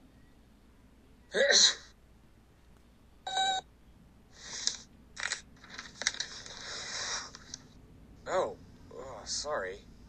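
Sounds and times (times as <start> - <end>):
cartoon robot electronic beep: 3.3 - 3.6.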